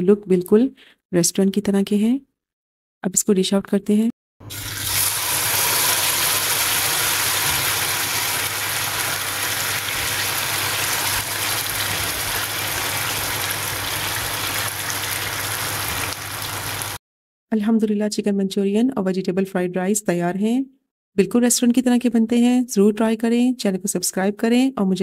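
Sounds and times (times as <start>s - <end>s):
gravy sizzling on a hot plate: 4.8s - 17.0s.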